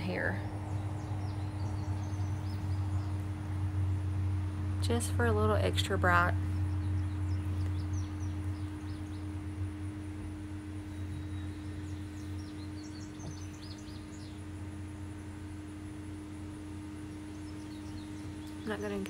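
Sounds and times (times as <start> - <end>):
birds chirping: 0.0 - 19.0
steady low hum: 0.0 - 19.0.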